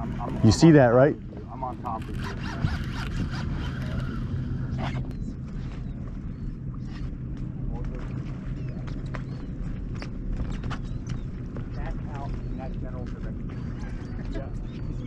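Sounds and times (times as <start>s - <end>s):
idling boat motor hum: 0.0s - 15.0s.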